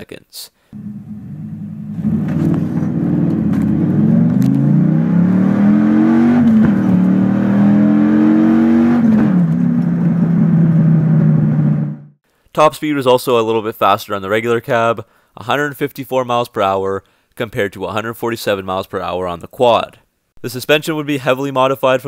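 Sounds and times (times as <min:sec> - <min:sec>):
engine accelerating hard: 0:00.8 - 0:12.2.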